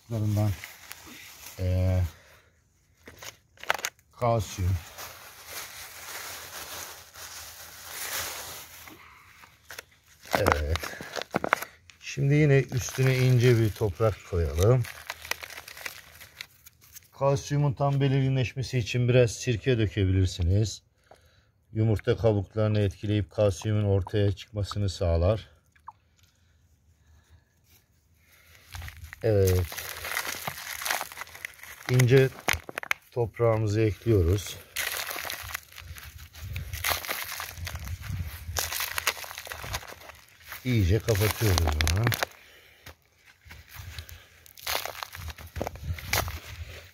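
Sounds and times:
soil sprinkling with clicks and rustles: 0:00.0 - 0:17.2, 0:25.5 - 0:46.9.

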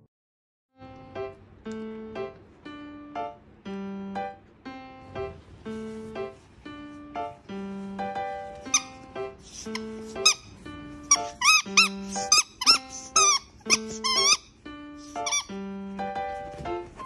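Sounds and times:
squeaky toy squeaks: 0:08.6 - 0:15.6.

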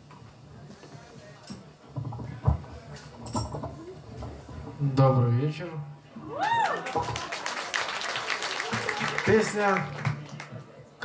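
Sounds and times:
faint crowd murmur: 0:00.0 - 0:11.0
equipment knocks and clinks: 0:01.5 - 0:03.8.

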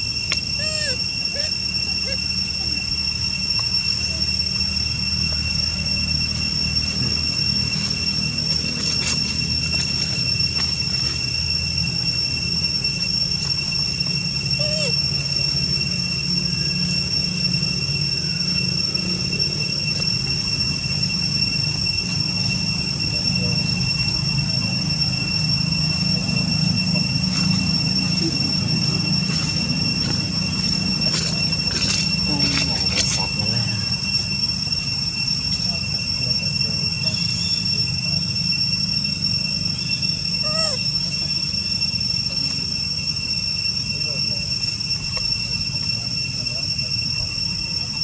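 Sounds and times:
high-pitched insect drone: 0:00.0 - 0:48.0.

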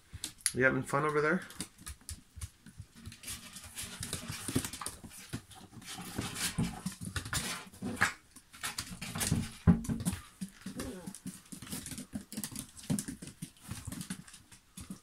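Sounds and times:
claws scratching cardboard and toy: 0:01.4 - 0:15.0
puppy vocal sounds: 0:10.6 - 0:11.4.

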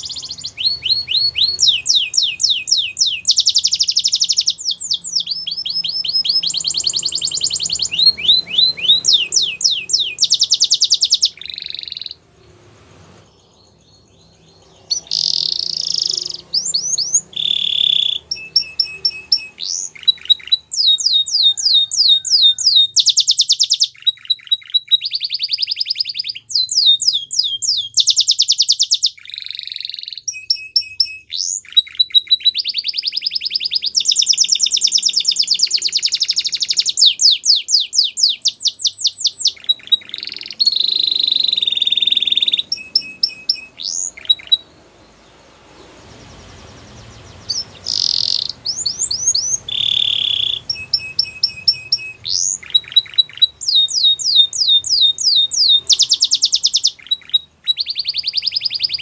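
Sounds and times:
canary singing: 0:00.0 - 0:59.0.

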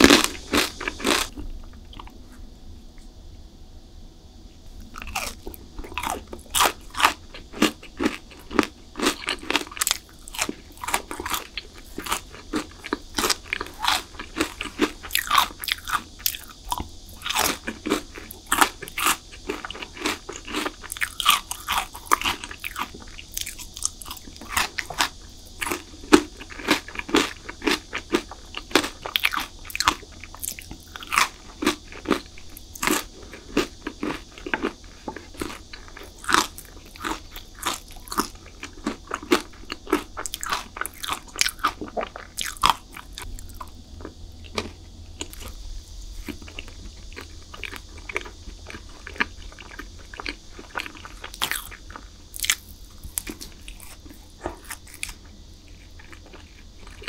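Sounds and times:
chewing: 0:00.0 - 0:02.2, 0:04.9 - 0:45.6, 0:46.2 - 0:57.0
crunching: 0:00.0 - 0:02.2, 0:04.9 - 0:45.6, 0:46.2 - 0:57.0.

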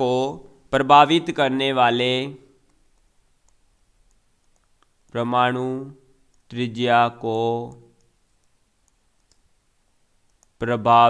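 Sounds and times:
man's voice: 0:00.0 - 0:02.5, 0:05.1 - 0:08.0, 0:10.6 - 0:11.0.

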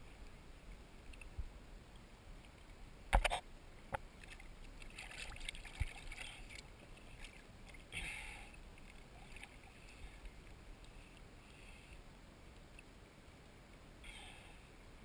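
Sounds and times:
water lapping and splashing: 0:02.4 - 0:11.3.

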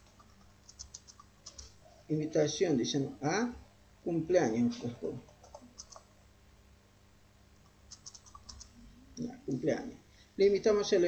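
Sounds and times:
computer keyboard typing: 0:00.0 - 0:01.7, 0:05.2 - 0:06.1, 0:07.9 - 0:08.8.

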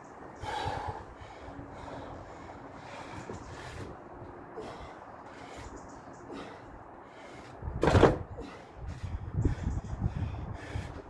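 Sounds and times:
man breathing hard: 0:00.2 - 0:11.0.

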